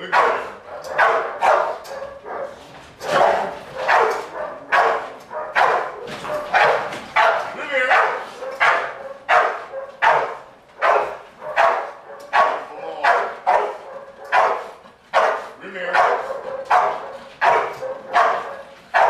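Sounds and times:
dog barking loudly: 0.0 - 19.0.

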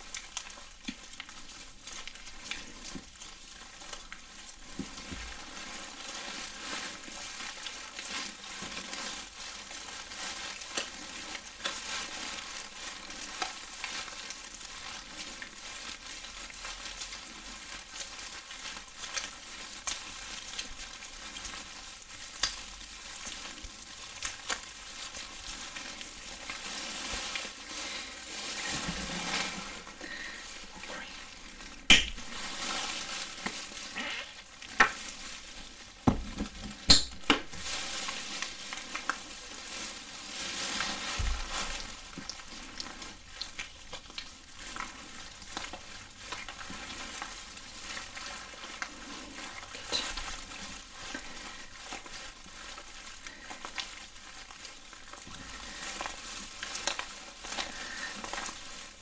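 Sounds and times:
gloved hands rubbing wet lotion: 25.1 - 41.9.

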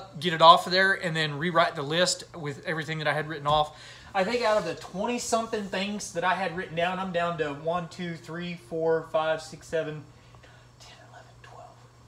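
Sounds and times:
steady low hum: 0.0 - 12.0
man whispering: 10.6 - 12.0.

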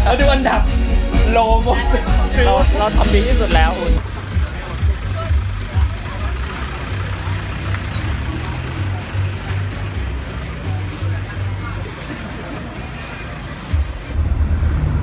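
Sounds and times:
indistinct voices: 0.0 - 15.0
music bass line: 0.0 - 15.0
truck engine running: 2.1 - 15.0.

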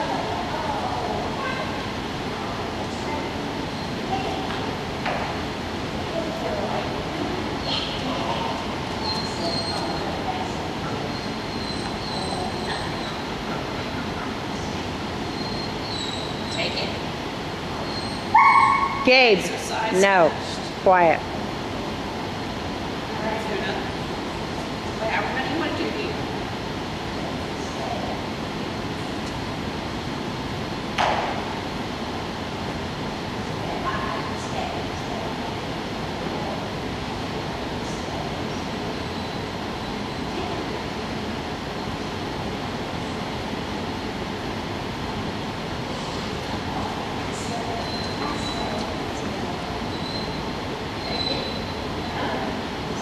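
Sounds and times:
large hall noise: 0.0 - 53.0
dog barking loudly: 18.3 - 19.0.

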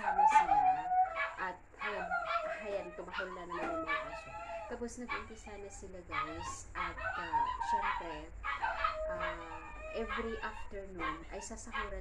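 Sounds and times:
woman talking: 0.0 - 8.3, 9.0 - 12.0
dogs whining: 0.0 - 12.0.

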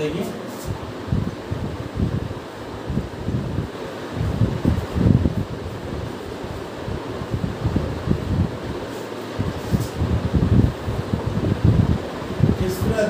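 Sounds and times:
wind buffeting microphone: 0.7 - 13.0
steady hiss: 2.1 - 13.0.

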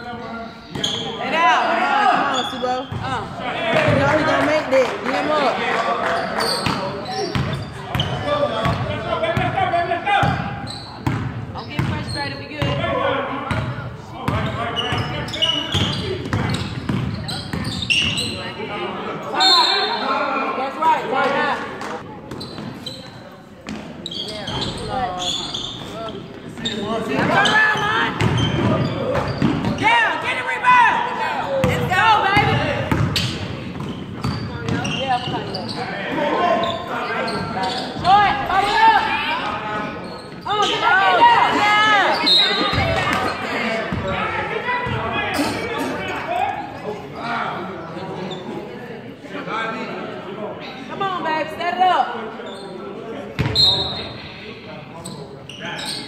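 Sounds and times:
people shouting and talking: 0.0 - 56.0.

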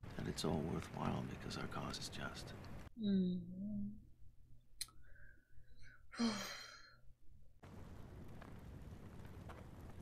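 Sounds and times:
person humming: 3.0 - 4.0
long breathy sigh: 5.0 - 7.0.

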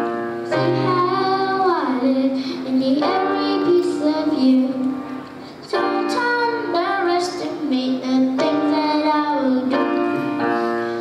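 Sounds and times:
grand piano: 0.0 - 11.0.

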